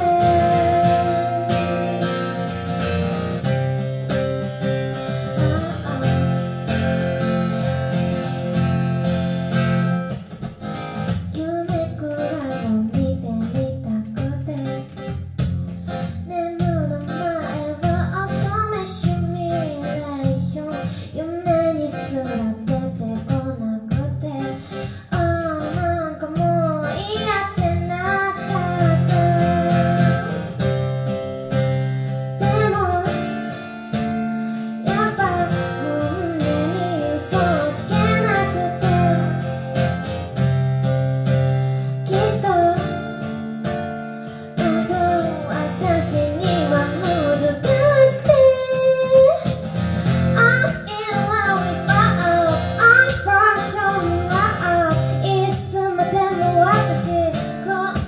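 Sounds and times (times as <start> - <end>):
woman singing: 0.0 - 3.0, 5.0 - 6.9, 11.0 - 15.2, 15.9 - 30.5, 32.4 - 40.0, 41.9 - 43.4, 44.2 - 58.0
acoustic guitar strumming: 0.0 - 58.0.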